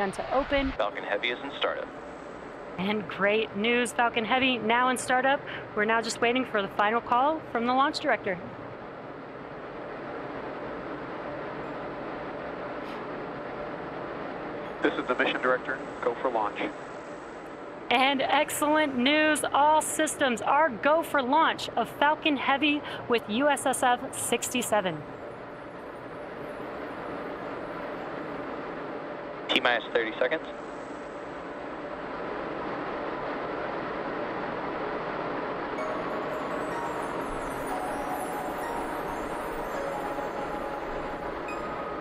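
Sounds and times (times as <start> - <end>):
launch pad hiss and rumble: 0.0 - 42.0.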